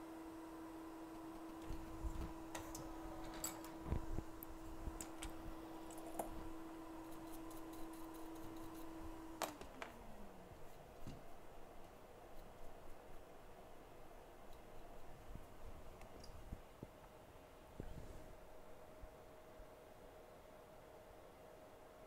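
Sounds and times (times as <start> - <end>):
small electric fan motor humming: 0.0 - 22.0.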